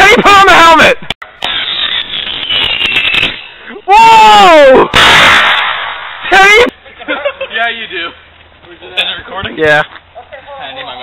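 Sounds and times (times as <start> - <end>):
faint high whistle: 1.4 - 3.7.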